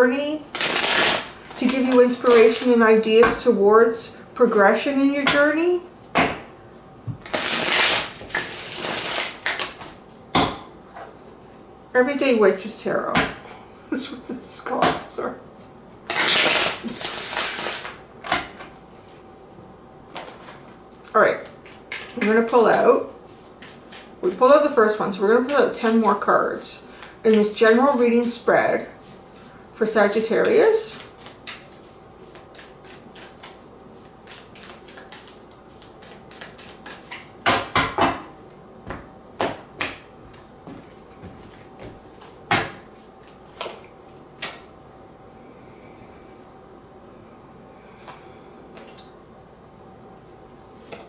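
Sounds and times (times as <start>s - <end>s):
cards shuffling: 7.2s - 9.9s, 30.9s - 37.3s.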